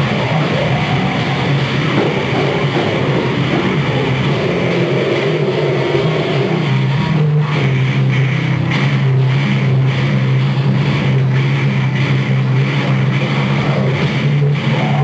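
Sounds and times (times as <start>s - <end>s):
distorted guitar chord droning: 0.0s - 15.0s.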